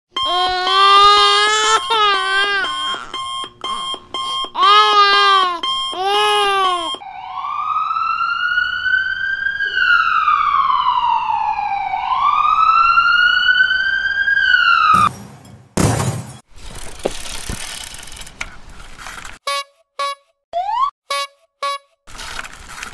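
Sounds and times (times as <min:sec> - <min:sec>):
ambulance siren wailing: 0:00.1 - 0:15.0
high cartoon voice wailing: 0:04.6 - 0:07.0.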